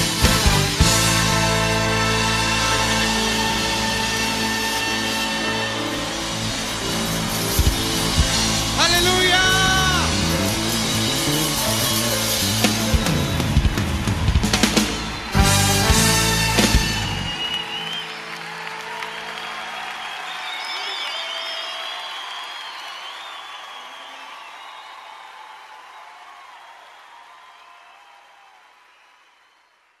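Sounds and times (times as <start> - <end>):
drum and cymbal hits: 0.0 - 17.5
crowd voices: 0.0 - 21.4.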